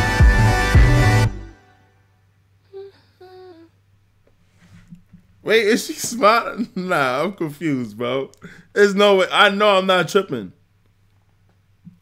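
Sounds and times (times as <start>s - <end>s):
person humming: 2.7s - 3.8s.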